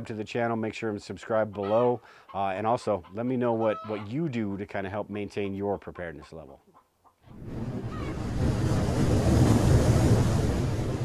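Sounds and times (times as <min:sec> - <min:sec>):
rushing whoosh with deep rumble: 0:07.3 - 0:11.0.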